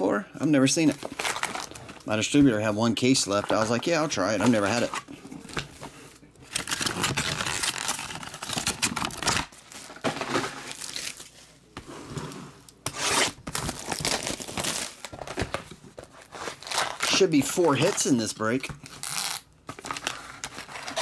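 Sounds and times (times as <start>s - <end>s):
foil wrappers crinkling: 0.8s - 2.7s, 6.4s - 11.4s, 13.2s - 21.0s.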